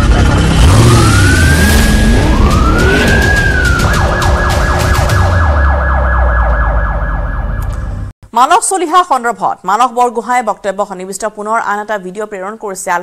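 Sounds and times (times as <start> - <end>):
deep bass rumble: 0.0 - 8.1
police siren wailing: 0.2 - 8.1.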